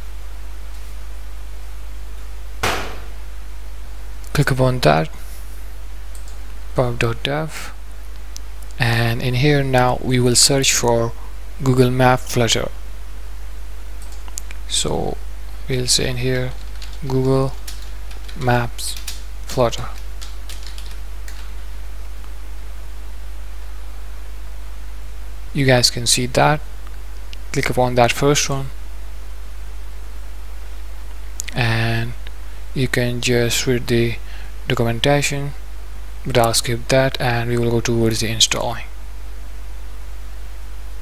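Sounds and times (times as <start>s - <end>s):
low electrical hum: 0.0s - 41.0s
sharp knock: 2.6s - 3.2s
computer keyboard typing: 16.5s - 18.4s, 19.0s - 19.2s, 20.0s - 21.5s.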